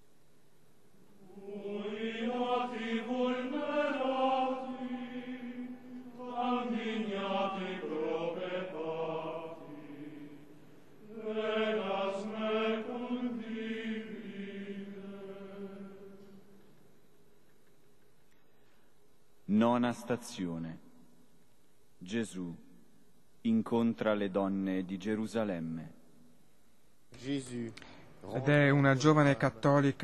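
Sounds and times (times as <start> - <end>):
liturgical chant singing: 1.1 - 16.8.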